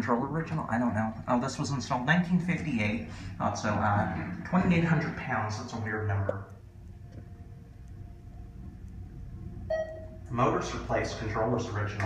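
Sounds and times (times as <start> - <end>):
elevator low hum: 0.0 - 12.0
faint steady tone: 6.2 - 11.1.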